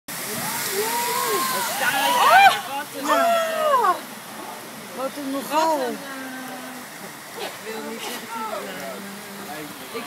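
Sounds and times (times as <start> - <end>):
heavy rain pouring: 0.1 - 10.0.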